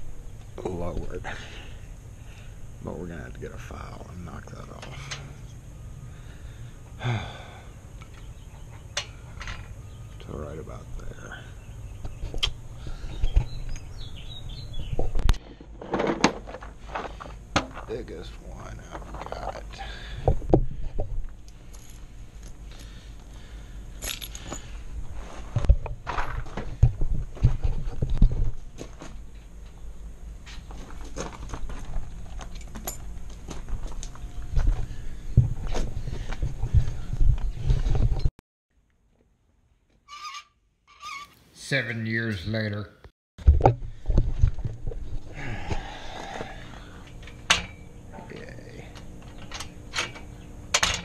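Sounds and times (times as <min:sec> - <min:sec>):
keys jangling: 0:24.0 - 0:24.7.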